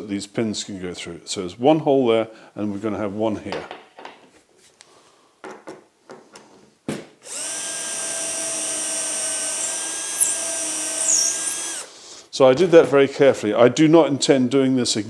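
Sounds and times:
cordless drill boring into wood: 7.2s - 11.9s.

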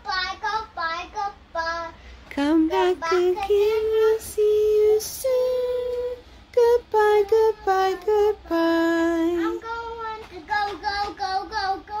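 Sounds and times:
child singing: 0.0s - 12.0s.

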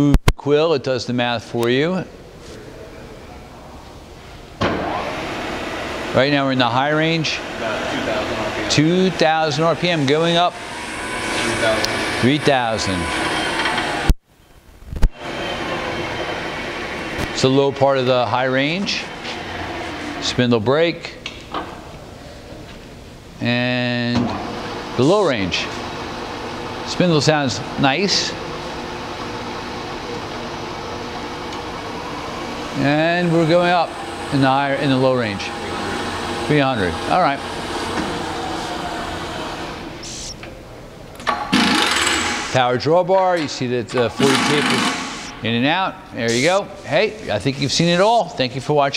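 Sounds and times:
mill spindle running: 4.6s - 14.2s, 15.2s - 22.1s, 23.8s - 42.7s, 43.4s - 45.5s
burst of air and metal noise: 41.5s - 42.6s, 44.2s - 45.4s.

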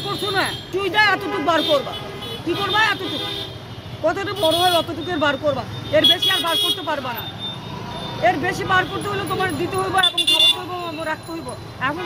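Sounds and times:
woman speaking: 0.0s - 3.3s, 4.0s - 7.2s, 8.2s - 12.0s
street traffic: 0.0s - 12.0s.

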